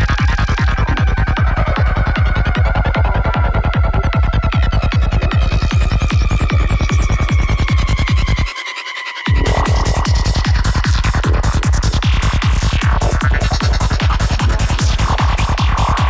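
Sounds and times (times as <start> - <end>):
kick and bass pulse: 0.0 - 8.5, 9.3 - 16.0.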